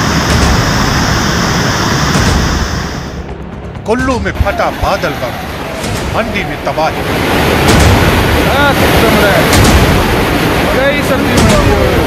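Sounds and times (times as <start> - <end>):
river water rushing: 4.7 - 12.0.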